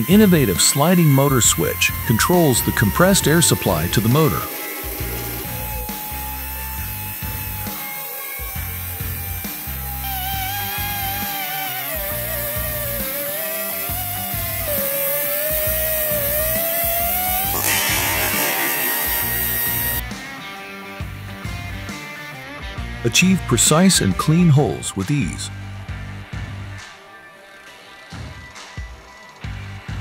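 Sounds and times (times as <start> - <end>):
magnetic drill whining through steel: 0.0 - 20.2
background music with bass beat: 1.6 - 14.9.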